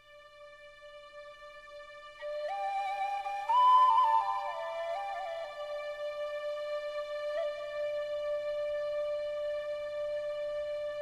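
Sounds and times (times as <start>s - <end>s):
flute melody: 2.0s - 11.0s.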